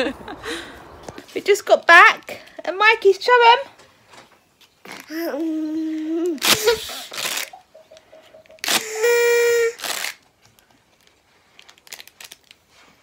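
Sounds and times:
person laughing: 6.3 - 9.8
party blower note: 8.7 - 10.0.

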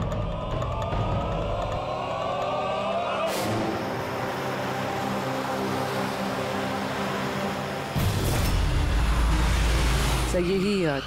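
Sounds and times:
music drone: 1.5 - 11.0.

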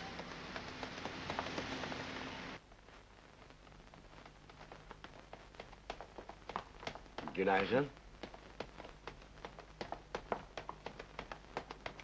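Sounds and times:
scattered clicks and taps: 0.0 - 2.1, 3.7 - 12.0
steady street hiss: 0.0 - 12.0.

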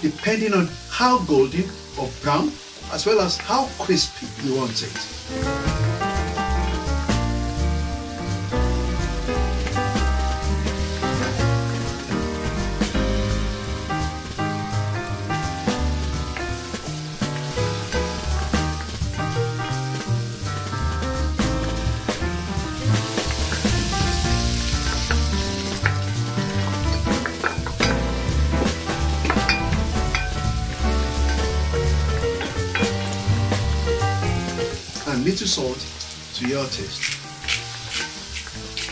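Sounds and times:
background music with bass: 0.0 - 38.9
food sizzling in oil: 0.0 - 38.9.

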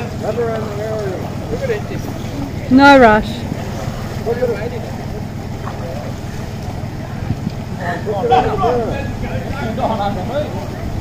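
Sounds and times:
faint distant voices: 0.0 - 11.0
wind rumble on microphone: 1.3 - 11.0.

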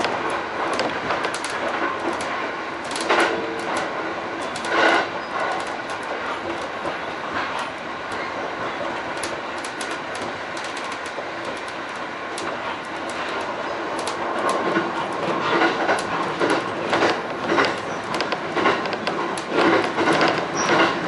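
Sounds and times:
train wheels on rails: 0.0 - 21.0
wheels clicking over track: 0.0 - 21.0.

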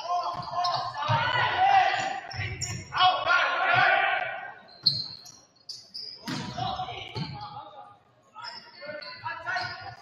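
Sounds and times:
sneakers squeaking on wooden floor: 0.0 - 3.0, 4.6 - 7.7, 8.4 - 10.0.

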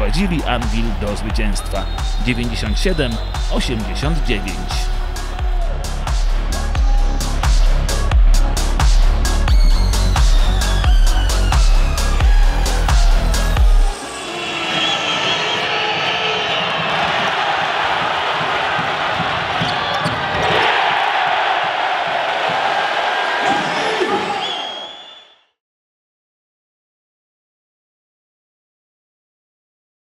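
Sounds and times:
electronic music with bass beat: 0.0 - 14.2
crowd noise: 13.9 - 25.1
basketball bouncing on court: 17.9 - 20.4.

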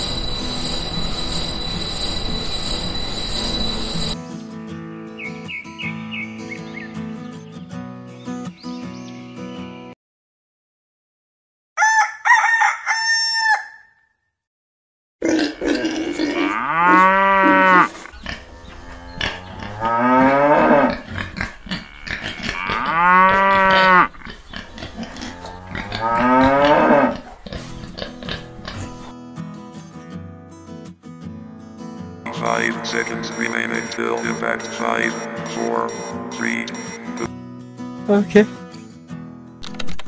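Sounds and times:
cow mooing: 15.3 - 27.4, 32.3 - 37.3.

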